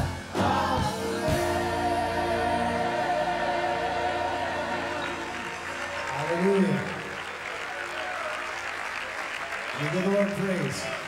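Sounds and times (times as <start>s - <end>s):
choir and band chord: 0.0s - 6.0s
congregation applauding: 4.5s - 11.0s
crowd calling out praise: 4.8s - 11.0s.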